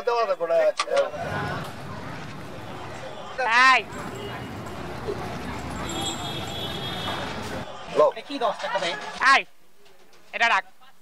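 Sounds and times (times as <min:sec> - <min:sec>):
faint voices: 0:00.0 - 0:10.3
street background noise: 0:00.0 - 0:11.0.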